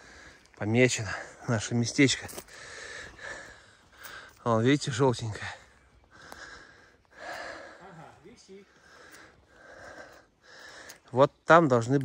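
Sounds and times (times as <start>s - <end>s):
person breathing: 0.0s - 1.4s, 2.3s - 4.4s, 5.4s - 11.1s.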